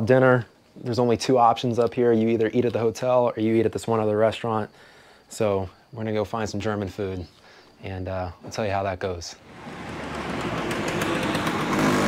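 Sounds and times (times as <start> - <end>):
motor vehicle running on road: 9.5 - 12.0.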